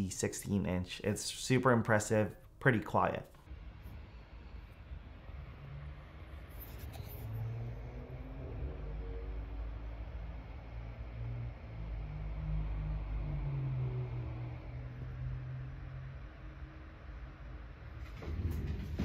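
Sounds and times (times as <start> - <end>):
cars passing rumble: 3.5 - 19.0.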